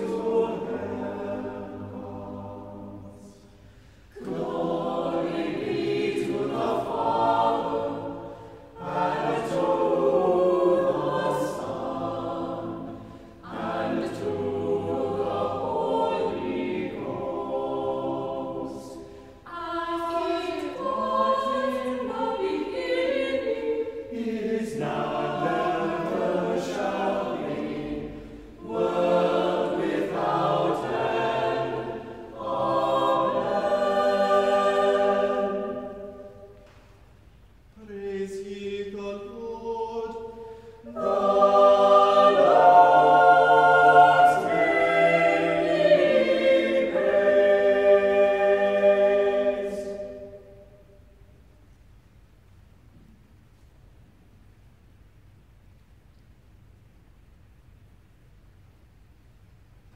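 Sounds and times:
church choir singing in harmony: 0.0s - 51.5s.

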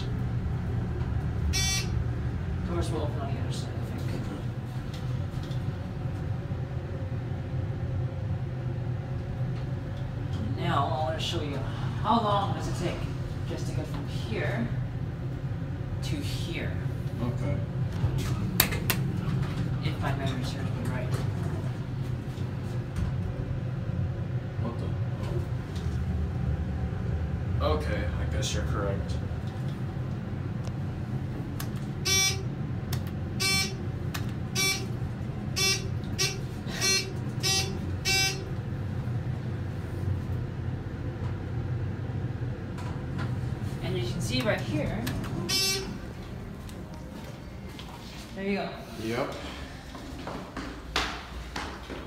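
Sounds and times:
elevator low buzz: 0.0s - 48.8s
elevator buzzer buzzing: 1.4s - 2.2s, 32.0s - 38.7s, 45.4s - 46.2s.

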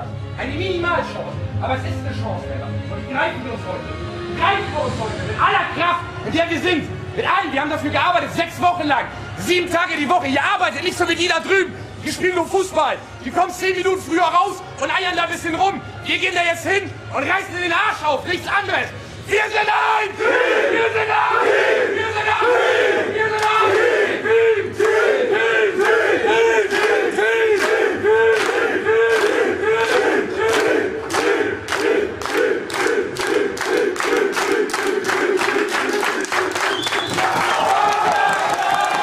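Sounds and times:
men chanting in unison: 19.4s - 36.5s
cheering and yelling: 19.4s - 39.0s
rhythmic clapping: 23.3s - 23.8s, 24.7s - 39.0s.

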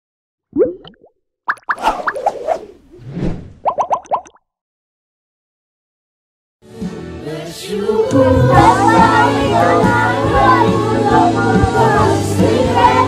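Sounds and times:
cartoon plops and pops: 0.5s - 2.4s, 3.6s - 4.4s.

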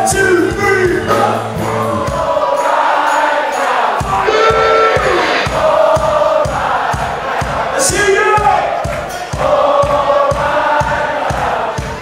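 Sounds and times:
band kick-drum beat: 0.0s - 3.0s, 3.8s - 12.0s
crowd singing along: 0.9s - 12.0s.

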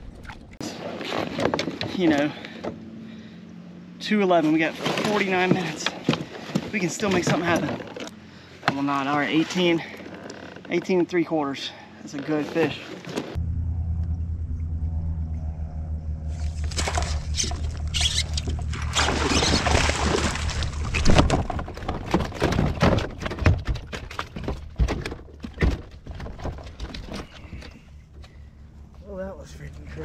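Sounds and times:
steady low hum: 13.3s - 22.2s
fish thunking on plastic kayak: 16.7s - 27.7s
fish splashing at the surface: 18.7s - 21.4s.

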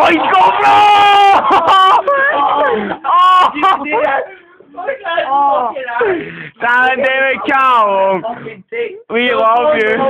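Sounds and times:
people laughing uncontrollably: 0.0s - 4.2s.

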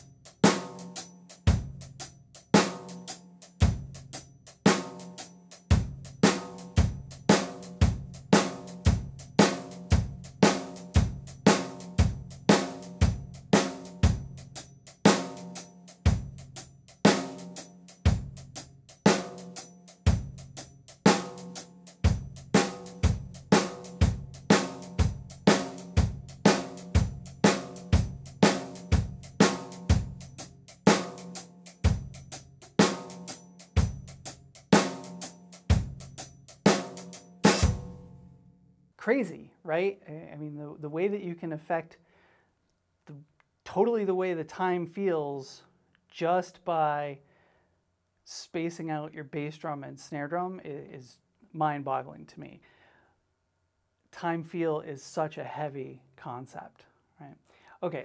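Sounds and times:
drum kit shuffle groove: 0.0s - 38.2s.

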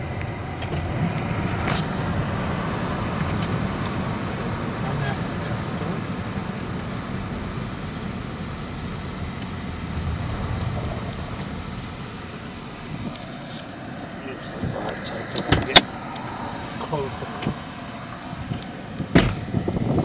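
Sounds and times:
road and engine rumble in car: 0.0s - 20.0s.

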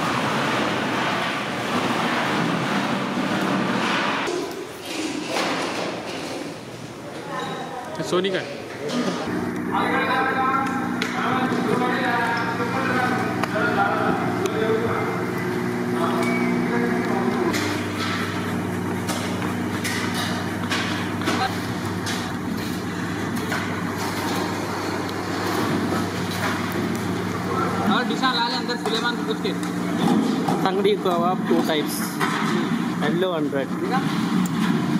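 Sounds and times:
low mechanical hum: 0.0s - 34.9s.

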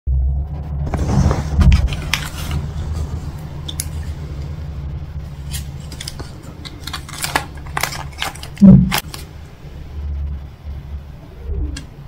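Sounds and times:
steady low hum: 0.1s - 12.0s
foil wrapper crinkling: 1.7s - 4.4s, 5.3s - 9.4s.

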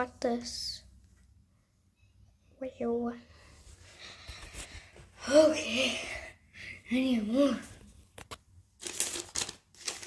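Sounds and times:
cardboard rustling: 8.8s - 10.0s.

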